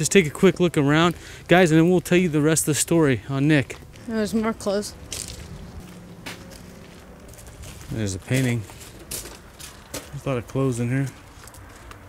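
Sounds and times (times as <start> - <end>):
footsteps on gravel: 0.2 - 12.0.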